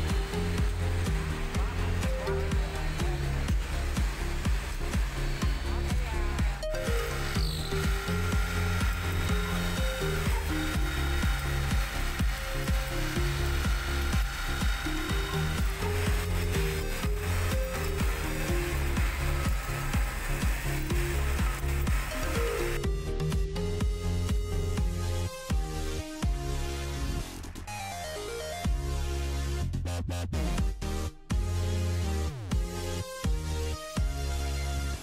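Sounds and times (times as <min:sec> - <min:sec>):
drilling machine whine: 0:00.0 - 0:27.6
electronic music with beat: 0:00.0 - 0:35.0.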